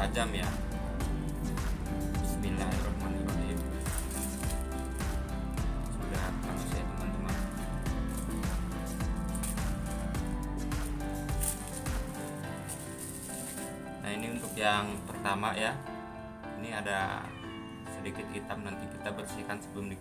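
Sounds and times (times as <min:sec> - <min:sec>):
background music: 0:00.0 - 0:20.0
plastic bag crinkling: 0:03.3 - 0:10.1, 0:10.8 - 0:15.0.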